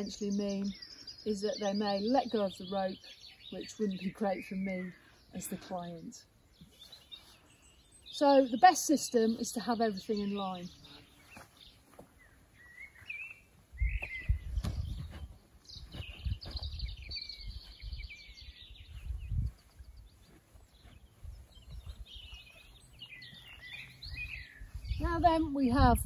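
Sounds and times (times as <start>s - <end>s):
songbirds chirping: 0.0s - 26.0s
footsteps on grass: 6.5s - 7.9s, 9.2s - 26.0s.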